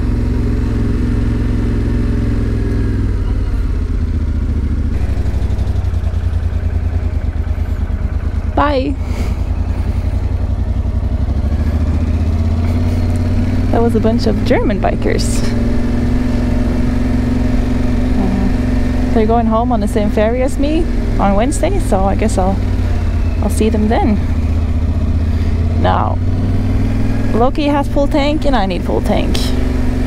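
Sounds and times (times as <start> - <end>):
motorcycle engine running: 0.0 - 30.0
brief pitch-bending sound: 18.2 - 18.6.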